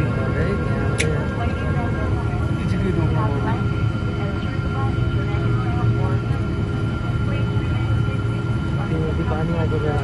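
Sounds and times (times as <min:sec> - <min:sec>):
faint steady whine: 0:00.0 - 0:10.0
jet engine rumble: 0:00.0 - 0:10.0
voices talking in cabin: 0:00.0 - 0:10.0.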